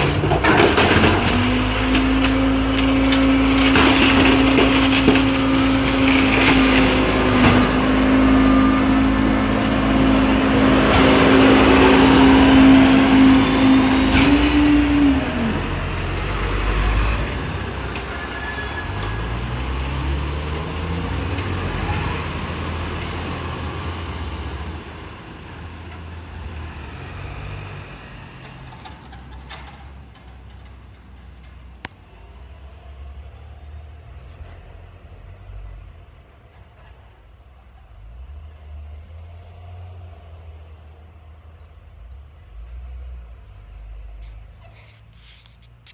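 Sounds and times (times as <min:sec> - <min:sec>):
diesel engine revving: 0:00.0 - 0:36.0.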